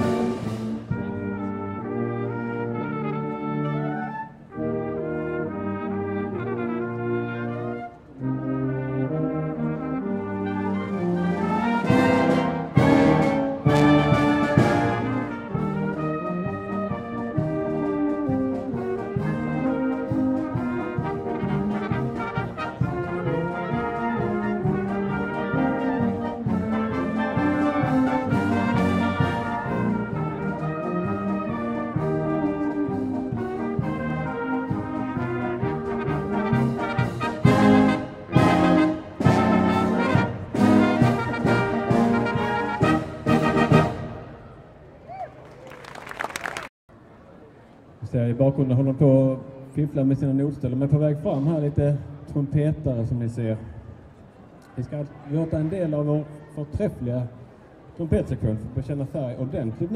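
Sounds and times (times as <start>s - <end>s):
military band playing: 0.0s - 44.6s.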